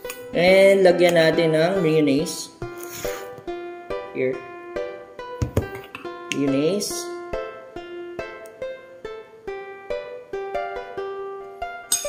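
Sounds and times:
plucked string instrument music: 0:00.0 - 0:12.0.

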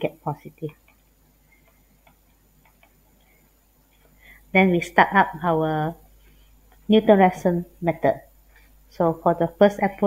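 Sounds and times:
stylus tapping on tablet: 0:01.6 - 0:03.0.

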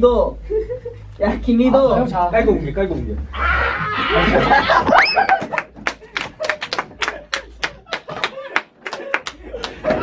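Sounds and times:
young men laughing loudly: 0:00.4 - 0:01.0, 0:03.4 - 0:10.0.

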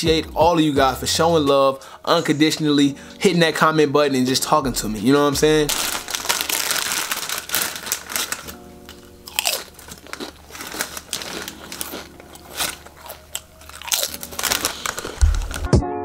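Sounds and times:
plastic packaging crinkling: 0:05.6 - 0:15.8.

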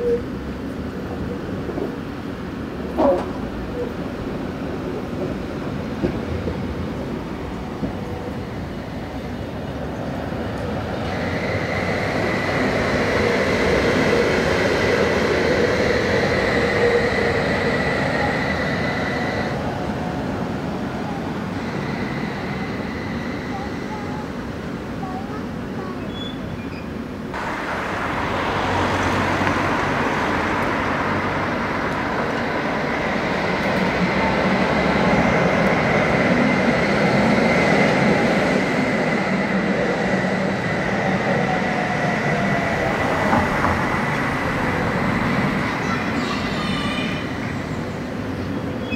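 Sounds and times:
tram approaching: 0:00.0 - 0:48.9
tram wheels rumbling on track: 0:00.0 - 0:48.9
tram whine: 0:00.0 - 0:48.9.

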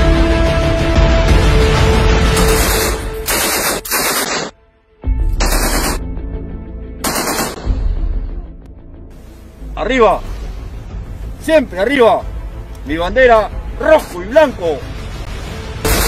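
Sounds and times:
music: 0:00.0 - 0:16.0
machine-gun fire: 0:02.4 - 0:04.5, 0:05.4 - 0:06.0, 0:07.0 - 0:07.7.

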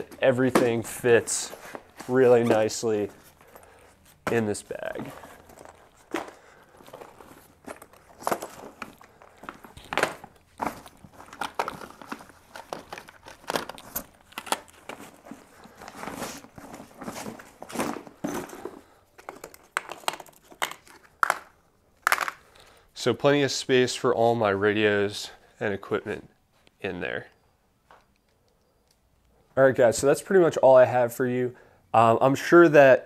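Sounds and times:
fabric bag rustling and crinkling: 0:00.0 - 0:19.6.

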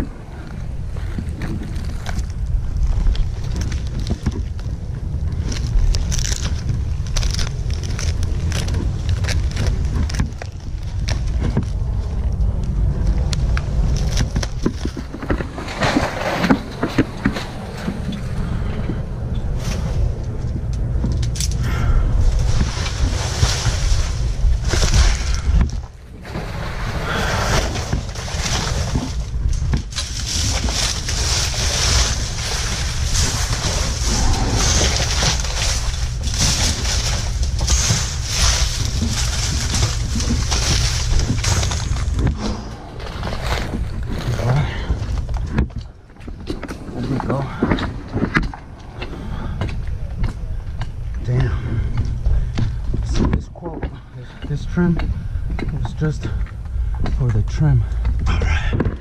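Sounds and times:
dry palm fronds crunching: 0:00.0 - 0:55.0
wind rumbling on microphone: 0:00.0 - 0:59.0.

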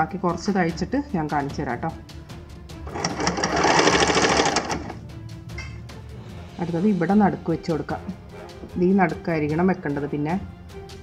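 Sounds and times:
sewing machine stitching: 0:02.9 - 0:05.0.

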